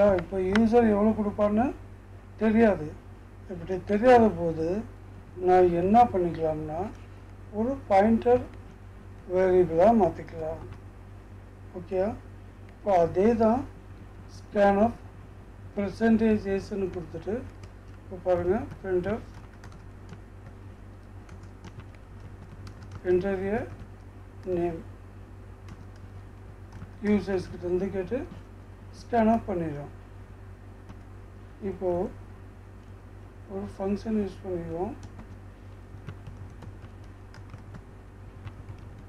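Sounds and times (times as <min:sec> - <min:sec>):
steady low hum: 0:00.0 - 0:39.0
computer keyboard clicks: 0:18.6 - 0:23.0, 0:36.0 - 0:37.8, 0:38.4 - 0:39.0.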